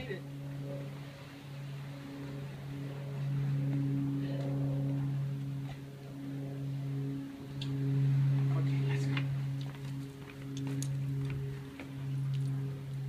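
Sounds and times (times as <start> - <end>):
low motor hum: 0.0 - 13.0.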